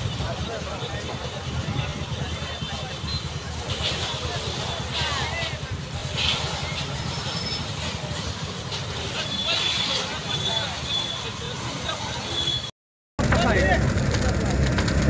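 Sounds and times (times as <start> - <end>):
people talking: 0.0 - 12.6, 13.2 - 14.7
low outdoor rumble: 13.2 - 15.0.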